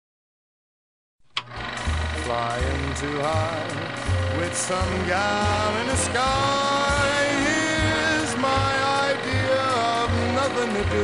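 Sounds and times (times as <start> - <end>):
big-band swing music: 1.9 - 11.0.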